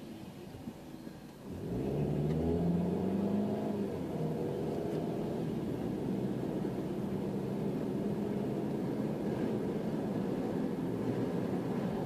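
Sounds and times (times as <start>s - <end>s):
car engine idling and accelerating: 0.0s - 12.0s.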